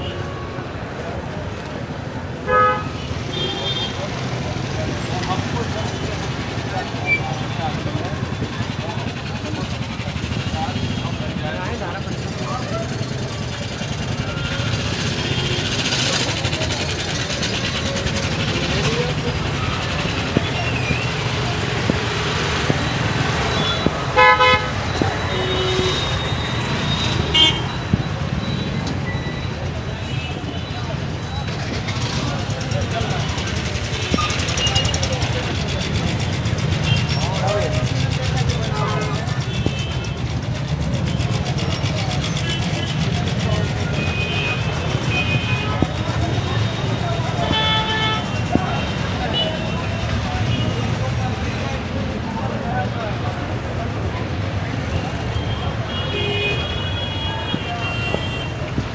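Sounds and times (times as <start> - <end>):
people's voices: 0.0 - 58.9
traffic din: 0.0 - 58.9
vehicle horns honking: 2.4 - 4.0, 15.0 - 15.8, 23.3 - 28.0, 46.6 - 49.8, 55.4 - 58.6.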